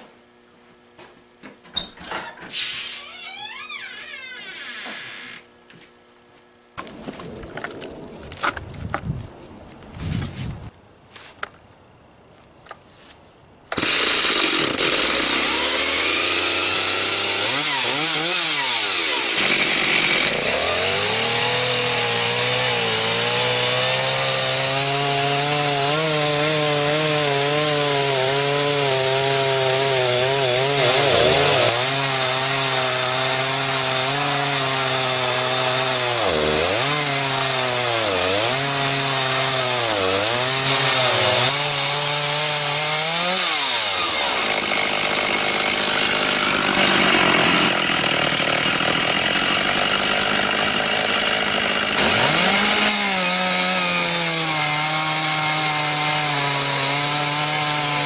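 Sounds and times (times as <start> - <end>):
chainsaw cutting log at full throttle: 13.7 - 58.0.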